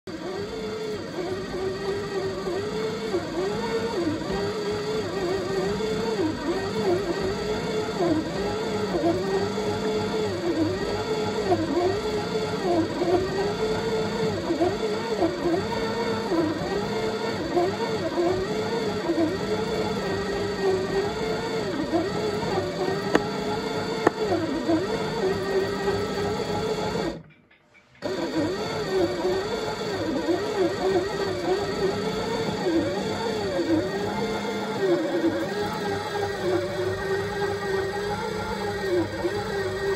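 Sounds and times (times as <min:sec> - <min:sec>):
dough kneading machine whining: 0:00.1 - 0:39.9.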